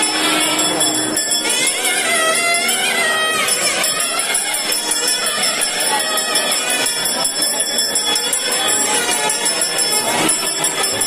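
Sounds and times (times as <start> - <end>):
metal bells jangling: 0.0 - 11.0.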